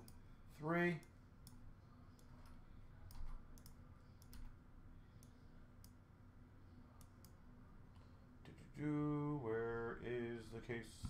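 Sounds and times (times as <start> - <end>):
computer mouse clicks: 1.0 - 4.6.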